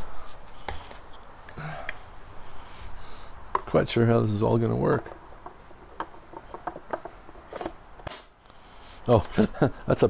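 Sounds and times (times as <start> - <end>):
wooden clicks and taps: 4.6 - 7.2.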